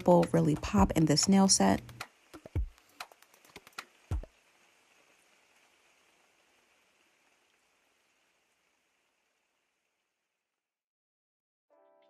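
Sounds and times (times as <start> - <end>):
faint hiss: 1.3 - 9.8.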